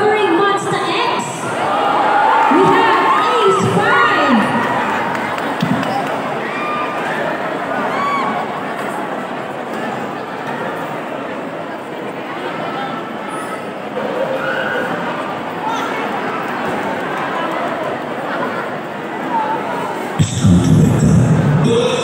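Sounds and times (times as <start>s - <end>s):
crowd shouts and cheers: 0.0s - 11.0s
audience chattering: 0.0s - 22.0s.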